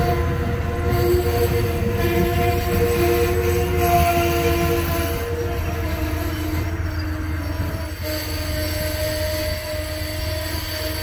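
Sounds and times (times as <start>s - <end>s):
train wheels rumbling on rail: 0.0s - 11.0s
train wheels squealing: 0.8s - 11.0s.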